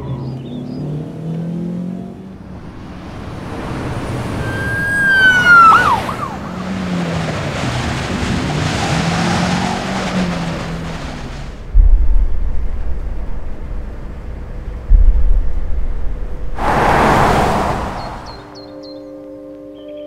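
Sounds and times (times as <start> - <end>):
car engine and road noise: 0.0 - 19.2
siren: 2.7 - 6.7.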